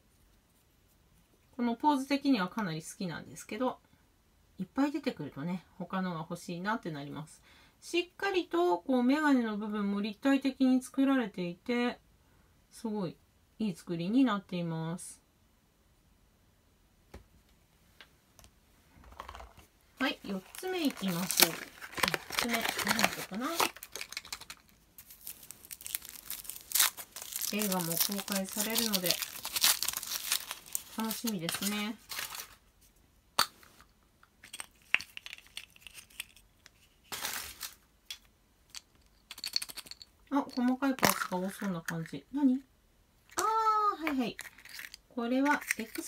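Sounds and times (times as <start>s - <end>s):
plastic capsule scraping rustle: 20.2s - 32.6s, 34.8s - 37.8s, 44.2s - 46.0s.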